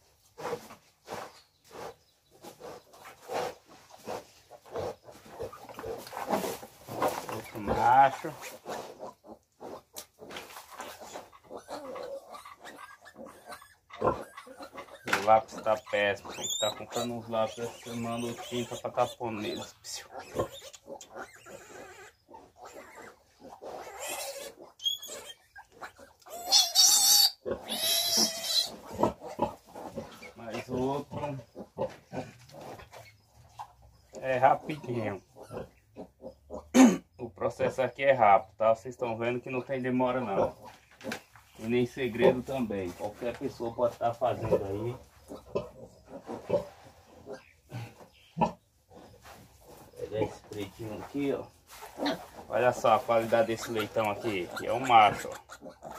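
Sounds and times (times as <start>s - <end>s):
pigs grunting: 2.6s - 38.2s, 39.1s - 55.9s
piglet squealing: 10.8s - 29.6s, 34.6s - 36.7s, 53.5s - 55.9s.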